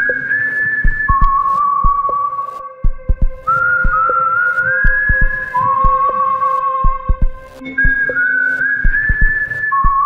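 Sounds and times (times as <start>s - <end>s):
eerie whistled melody: 0.0s - 10.0s
low heartbeat-like thumps: 0.8s - 2.2s, 2.8s - 4.2s, 4.8s - 6.2s, 6.8s - 8.1s, 8.8s - 10.0s.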